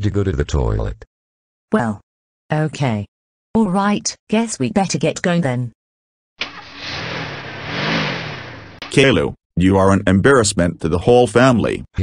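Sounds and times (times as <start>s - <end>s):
cartoon car engine revving: 6.4s - 9.1s.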